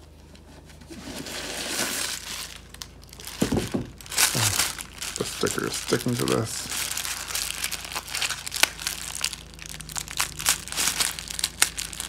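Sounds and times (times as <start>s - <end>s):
tissue paper rustling: 0.8s - 12.0s.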